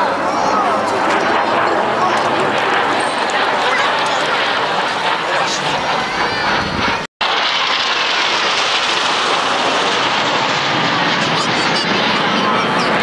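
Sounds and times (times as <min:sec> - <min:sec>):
jet engines flying overhead: 0:00.0 - 0:13.0.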